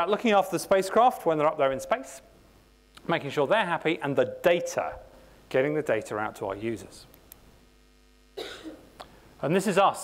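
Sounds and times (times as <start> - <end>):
man coughing: 8.4 - 8.9.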